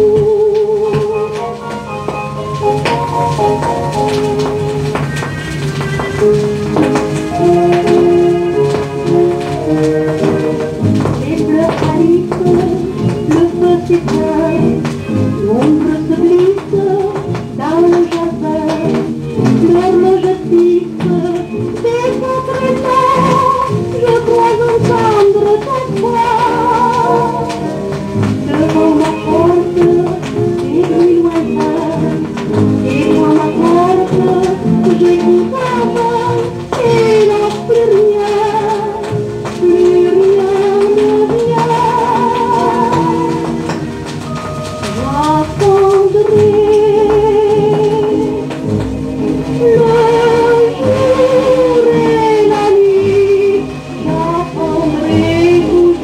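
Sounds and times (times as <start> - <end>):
old record playing orchestral music: 0.0 - 56.0.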